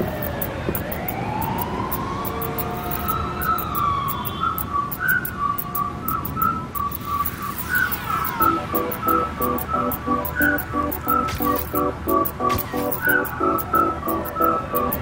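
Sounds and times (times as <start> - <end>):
faint rapid clicking: 0.0 - 15.0
robot electronic whistles: 0.0 - 15.0
short chirping beeps: 2.3 - 15.0.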